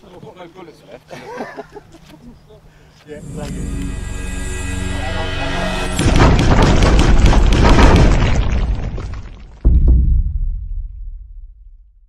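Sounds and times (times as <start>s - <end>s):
explosion blast: 5.8s - 12.0s
debris crackling and rumbling: 6.0s - 11.7s.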